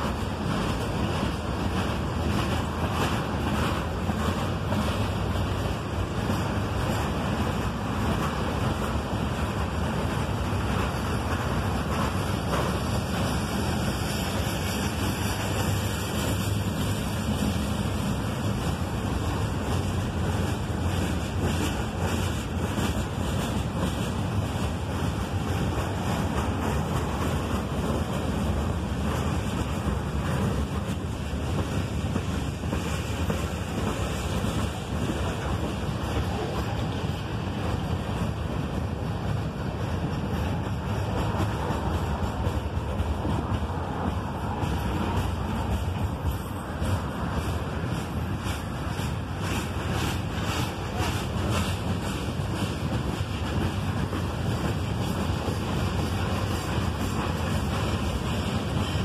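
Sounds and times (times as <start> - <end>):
steel wheels rumbling on rails: 0.0 - 59.0.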